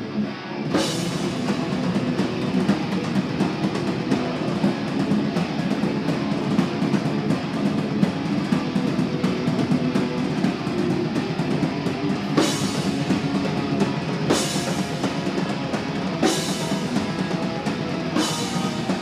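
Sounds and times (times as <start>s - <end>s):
heavy rock band playing: 0.0s - 19.0s.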